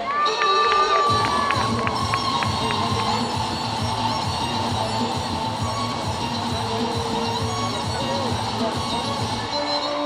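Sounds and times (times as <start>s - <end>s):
dance music with steady beat: 0.3s - 10.0s.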